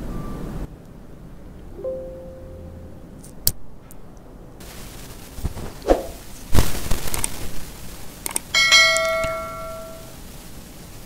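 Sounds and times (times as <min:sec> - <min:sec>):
quick clicks: 0:05.9 - 0:07.5, 0:08.2 - 0:09.3
bright bell ding: 0:08.6 - 0:10.1.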